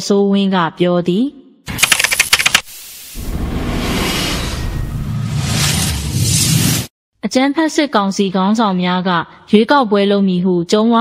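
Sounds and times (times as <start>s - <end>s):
quick run of sharp clicks: 1.7s - 2.7s.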